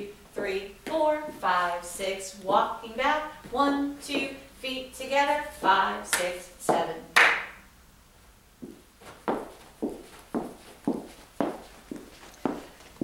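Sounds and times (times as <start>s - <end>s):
hand clap: 7.2s - 7.6s
shoes walking on wooden floor: 8.6s - 13.0s.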